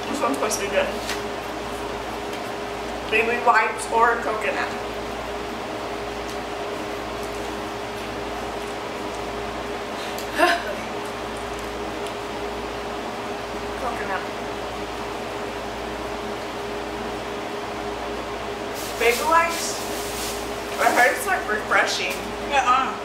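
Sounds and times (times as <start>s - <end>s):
room hum: 0.0s - 23.0s
woman murmuring: 10.3s - 10.9s.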